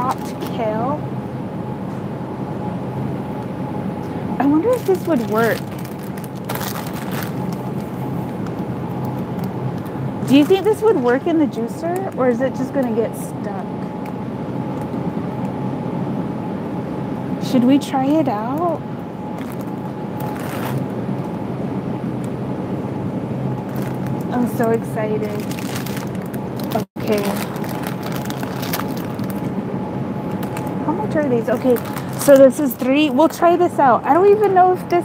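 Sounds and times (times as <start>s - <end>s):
low hum and rumble: 0.0s - 35.0s.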